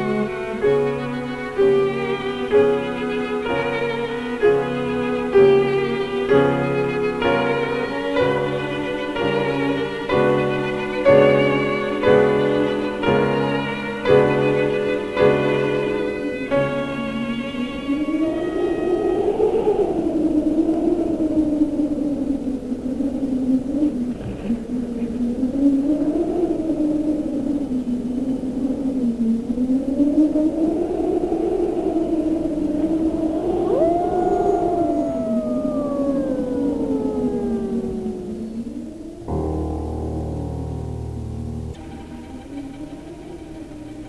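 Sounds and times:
siren-like film score tone: 0:29.4 - 0:40.4.

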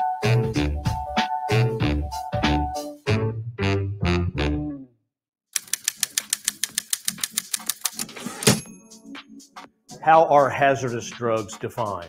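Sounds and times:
typewriter key clicks: 0:05.6 - 0:08.6.

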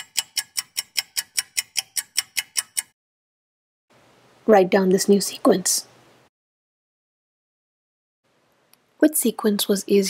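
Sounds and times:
timer ticking: 0:00.0 - 0:03.0.

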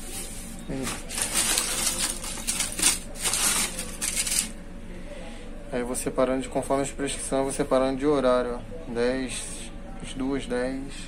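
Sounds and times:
plastic bag crinkling: 0:00.7 - 0:04.6
blister packs rustling and clicking: 0:00.8 - 0:04.6.

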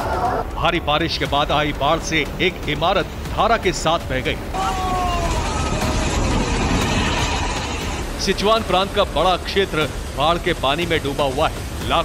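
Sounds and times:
floodwater torrent roaring: 0:00.0 - 0:12.0
long falling tones: 0:04.5 - 0:09.0.

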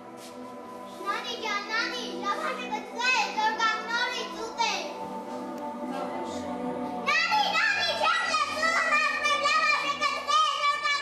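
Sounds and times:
background music with held notes: 0:00.0 - 0:11.0
girl's high-pitched voice: 0:01.0 - 0:05.0, 0:07.0 - 0:11.0.

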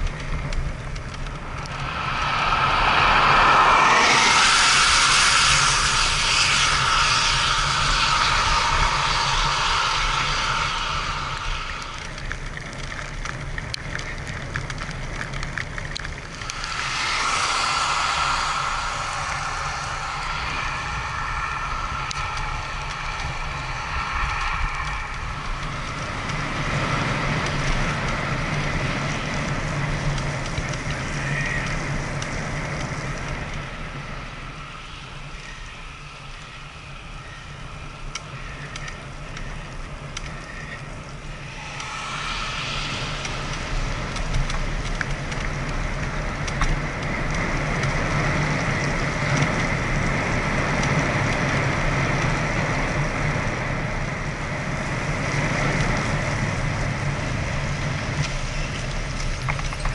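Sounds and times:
steady hum: 0:00.0 - 0:29.6, 0:32.8 - 0:49.3
bicycle tyres rolling on wet path: 0:00.0 - 0:59.9
wind on microphone: 0:00.0 - 0:59.9.

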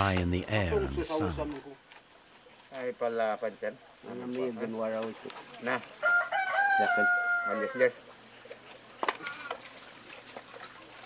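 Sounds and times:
rooster crowing: 0:06.0 - 0:07.9.

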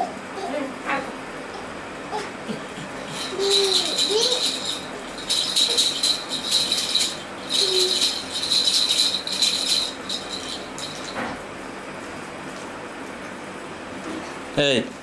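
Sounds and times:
toy rattle rattling: 0:03.0 - 0:11.2.

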